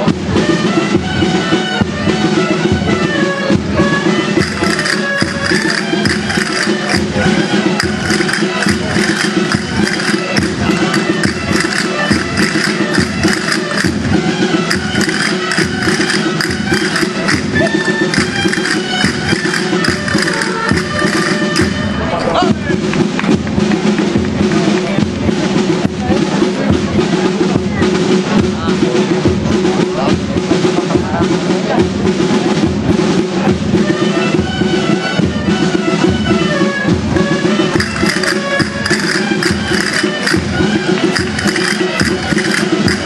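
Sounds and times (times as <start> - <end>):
drum beat: 0.0 - 43.0
high wind instrument melody: 0.0 - 43.0.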